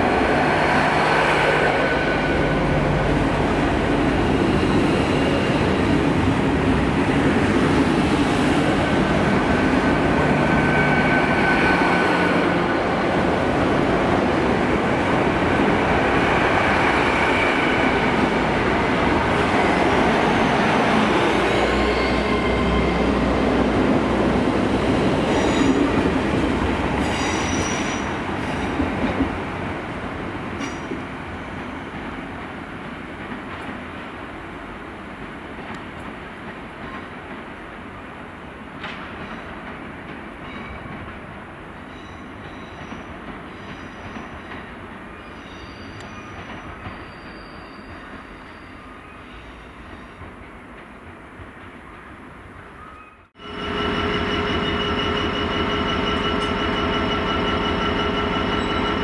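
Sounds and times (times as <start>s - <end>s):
train passing platform: 0.0s - 59.0s
train wheel squeals: 4.2s - 5.9s, 10.4s - 12.4s, 21.2s - 23.2s, 25.2s - 26.0s, 27.0s - 28.8s, 41.9s - 50.3s, 52.8s - 59.0s.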